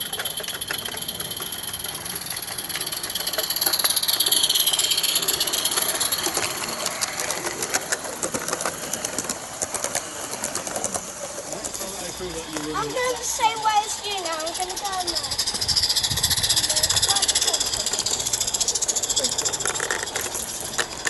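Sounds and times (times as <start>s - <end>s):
steam locomotive hissing: 0.0s - 21.0s
wheels clicking over track: 0.0s - 21.0s.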